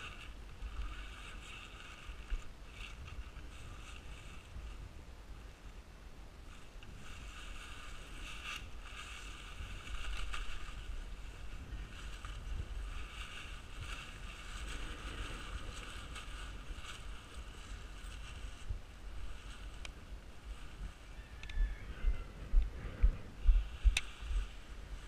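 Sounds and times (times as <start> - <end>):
nylon fabric crinkling: 0.0 - 4.8, 6.5 - 21.0
wind rumble on microphone: 0.0 - 25.0.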